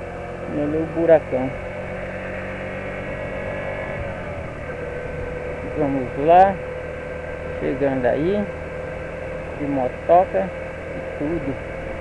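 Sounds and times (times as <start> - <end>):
motorcycle engine running: 0.0 - 12.0
wind and road rush: 0.0 - 12.0.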